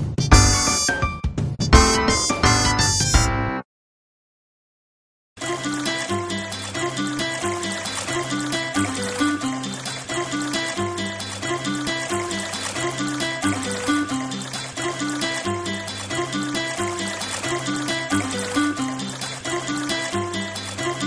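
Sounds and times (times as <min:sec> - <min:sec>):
instrumental children's music: 0:00.0 - 0:03.6, 0:05.4 - 0:21.0.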